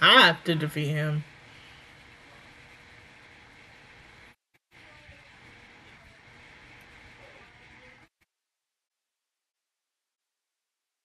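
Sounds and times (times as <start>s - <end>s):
faint steady hiss: 0.0s - 8.1s.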